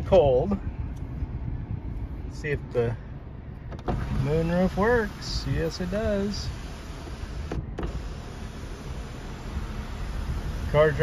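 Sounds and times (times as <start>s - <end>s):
car engine running: 0.0s - 11.0s
electric sunroof motor running: 4.7s - 11.0s.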